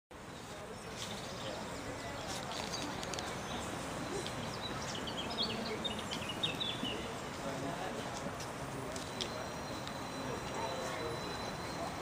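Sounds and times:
background hubbub: 0.1s - 12.0s
small birds chirping: 0.2s - 7.2s.

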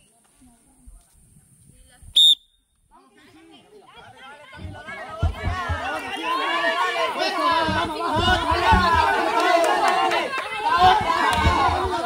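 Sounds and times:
referee's whistle blast: 2.2s - 2.6s.

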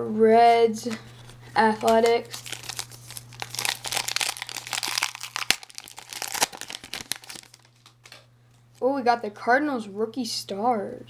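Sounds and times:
card wrapper crinkling: 1.1s - 8.2s
sharp wrapper snap: 1.8s - 8.2s.

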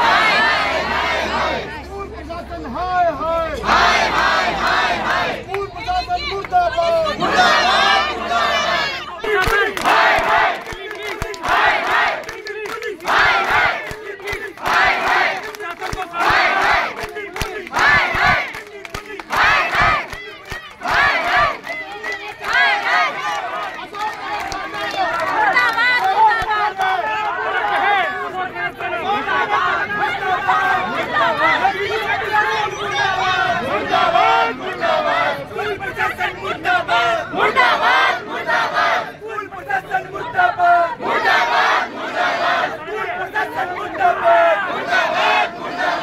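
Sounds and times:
crowd chanting a slogan: 0.0s - 46.0s
mixed shouting and chatter: 0.0s - 46.0s.

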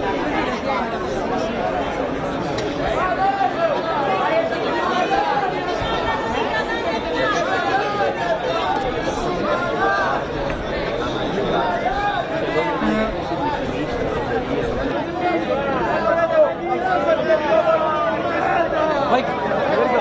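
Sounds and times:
crowd babble of overlapping voices: 0.0s - 20.0s.

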